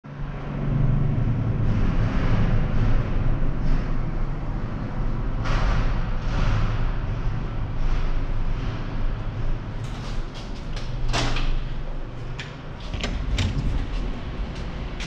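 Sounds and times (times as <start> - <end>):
low mechanical drone: 0.0 - 15.0.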